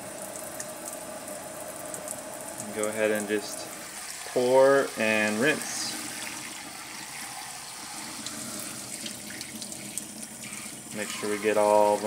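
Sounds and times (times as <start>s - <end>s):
faucet spraying water: 2.6s - 12.0s
water splashing in sink: 2.6s - 12.0s.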